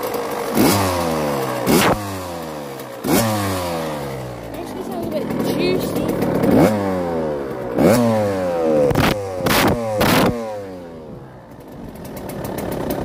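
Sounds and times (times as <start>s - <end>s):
dirt bike engine idling: 0.0s - 13.0s
dirt bike engine revving: 0.0s - 13.0s.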